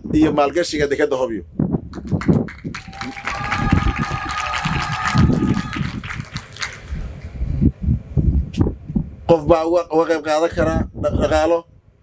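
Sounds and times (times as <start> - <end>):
audience applause: 2.2 - 7.0.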